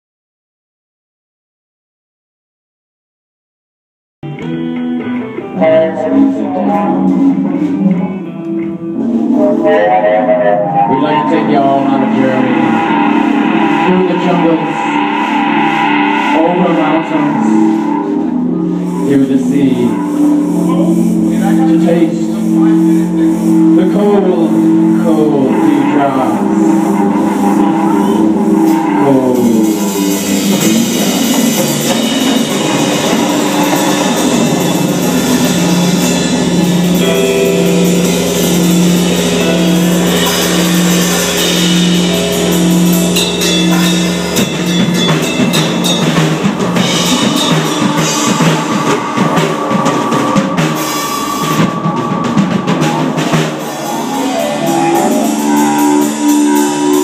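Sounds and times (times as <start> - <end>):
bass guitar: 4.2 - 57.0
drum kit: 4.2 - 57.0
electric guitar: 4.2 - 57.0.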